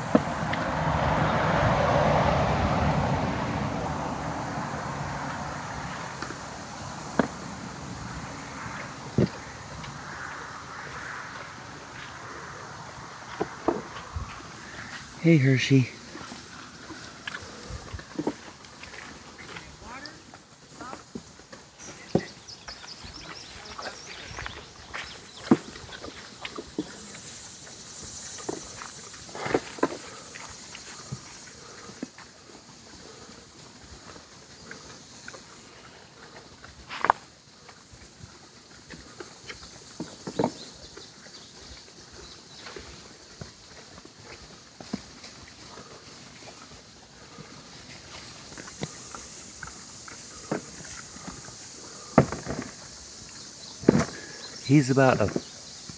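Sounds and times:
footsteps in straw: 7.7 - 20.5.

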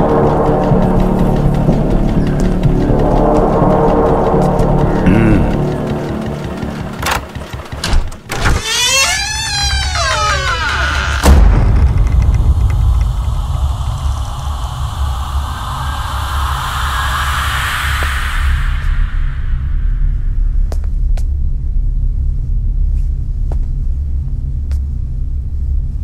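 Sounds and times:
low droning rumble: 0.0 - 7.6, 8.6 - 26.0
door latch clicking: 7.0 - 12.5
wooden door creaking open: 7.0 - 13.0.

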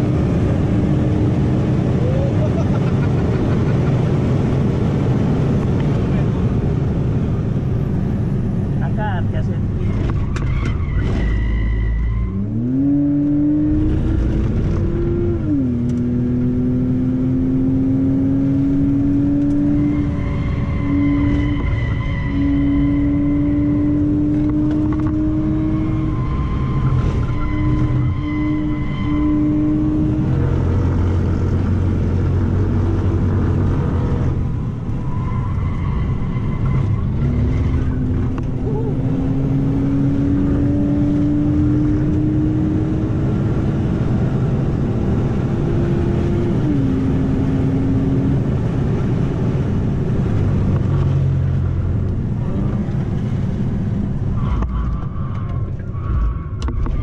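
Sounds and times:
car engine pulling hard: 0.0 - 57.0
road and wind noise: 0.0 - 57.0.

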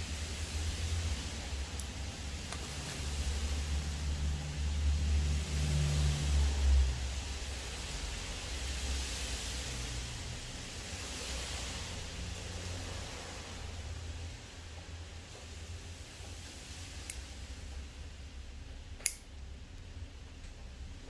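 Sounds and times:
heavy rain hiss: 0.0 - 21.0.

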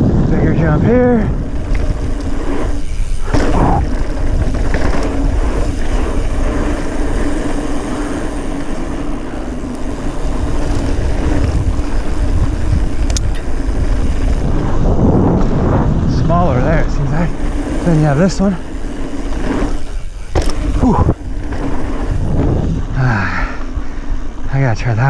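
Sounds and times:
wind noise on microphone: 0.0 - 24.5
steady hum: 0.0 - 24.8
bike tyre noise on dirt: 0.0 - 25.0.

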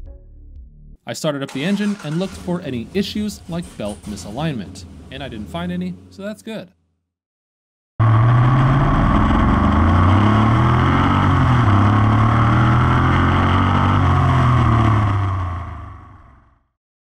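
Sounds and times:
car engine running: 1.5 - 6.2, 8.0 - 16.5.

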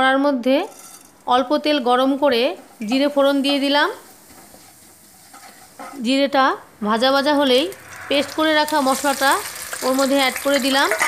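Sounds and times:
wooden spatula stirring: 2.5 - 6.0
seeds sizzling in hot oil: 2.6 - 6.2, 7.0 - 11.0.

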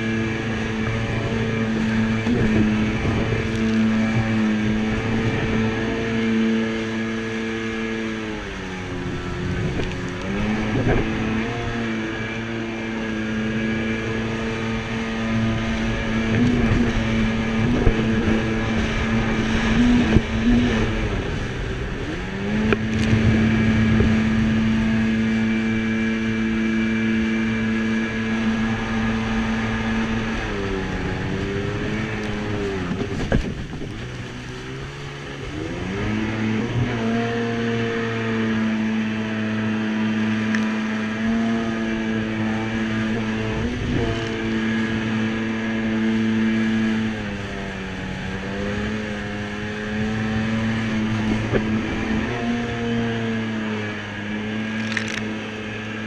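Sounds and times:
jet ski engine running hard: 0.0 - 56.0.

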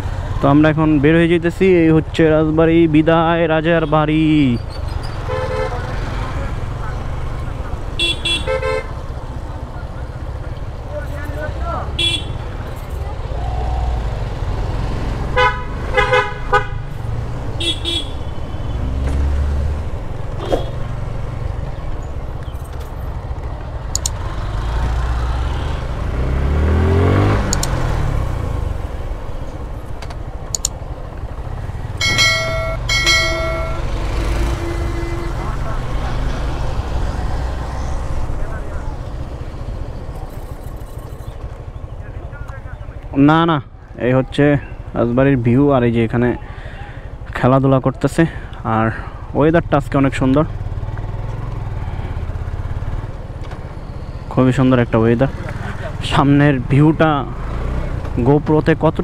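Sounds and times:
motorcycle engine rumble: 0.0 - 59.0
wind: 0.0 - 59.0
engine revving: 5.0 - 8.5, 13.4 - 21.7, 23.9 - 29.2, 31.4 - 39.7, 54.5 - 59.0
horn honks: 5.2 - 6.3, 7.9 - 9.0, 11.9 - 12.6, 15.3 - 16.9, 17.6 - 19.0, 31.8 - 36.3.

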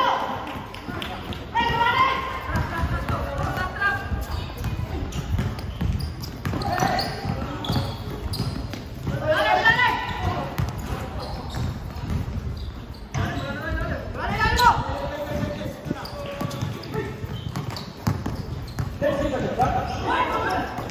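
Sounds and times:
basketball bouncing on court: 0.7 - 20.9
players shouting: 9.1 - 10.6.

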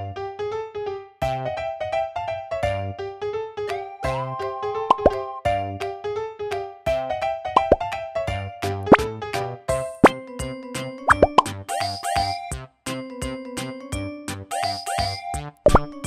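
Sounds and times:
bright children's music: 2.6 - 16.0.

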